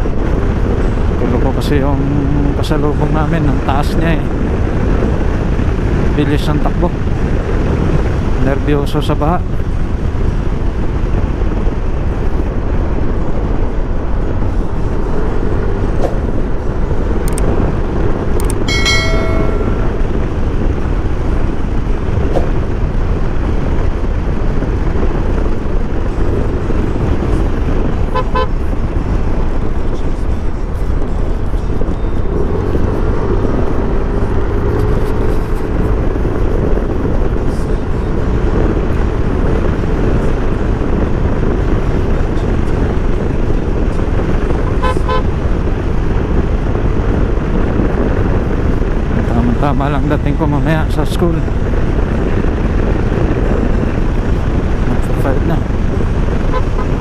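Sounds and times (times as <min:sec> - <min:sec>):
wind rushing over microphone: 0:00.0 - 0:57.0
horn short toots: 0:28.1 - 0:28.6, 0:44.7 - 0:45.3, 0:56.5 - 0:57.0.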